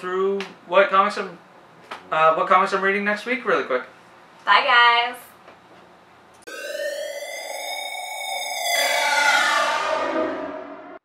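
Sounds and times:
buzzy synthesized tone: 6.5 - 11.0.

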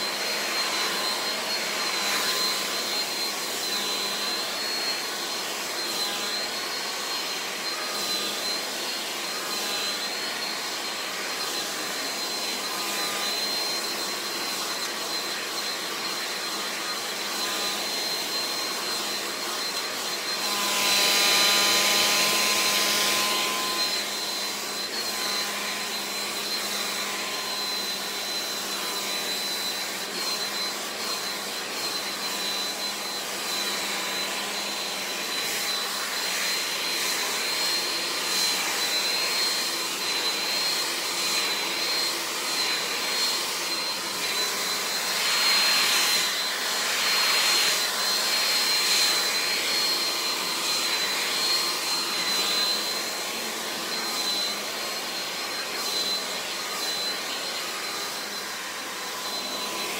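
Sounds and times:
hair dryer running: 0.0 - 59.9.

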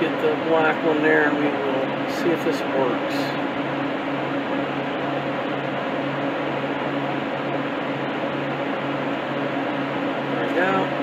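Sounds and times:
refrigeration fans humming: 0.0 - 11.0.

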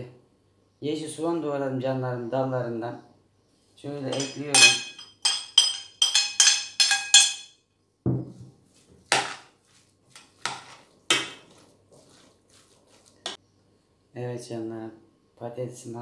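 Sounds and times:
plate clinking on metal pot: 4.1 - 7.5
plate knocking on table: 8.1 - 8.5.

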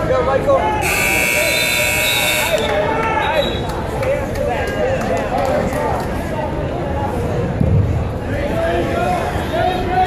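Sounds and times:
coaches and crowd shouting: 0.0 - 5.1, 8.3 - 10.0
scoreboard buzzer: 0.8 - 2.6.

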